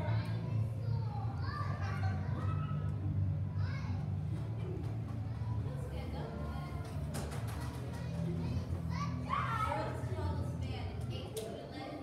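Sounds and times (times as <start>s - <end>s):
children's voices: 0.0s - 4.2s
steady low hum: 0.0s - 12.0s.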